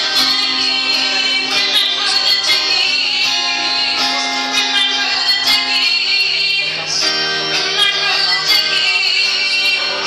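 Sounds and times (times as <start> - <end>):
strummed acoustic guitar: 0.0 - 10.0
woman singing: 0.0 - 10.0.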